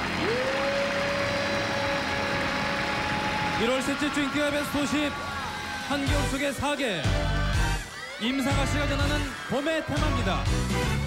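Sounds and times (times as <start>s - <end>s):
audience applause and cheering: 0.0s - 11.0s.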